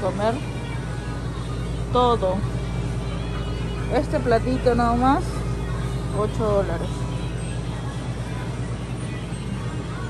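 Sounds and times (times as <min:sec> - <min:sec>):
background music playing: 0:00.0 - 0:10.0
steady low hum: 0:00.0 - 0:10.0.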